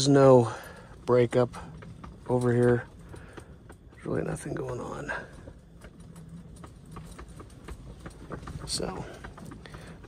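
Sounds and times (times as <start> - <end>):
faint clicks and ticks: 0.0 - 10.0.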